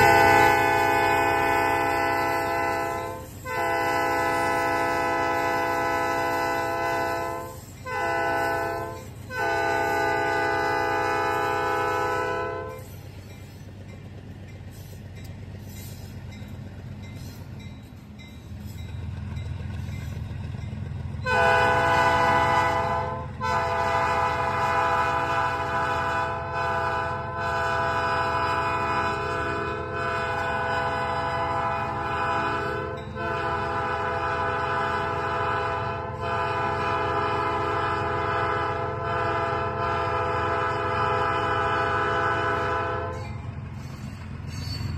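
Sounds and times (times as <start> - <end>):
locomotive air horn blasts: 0.0 - 12.8, 21.2 - 43.4.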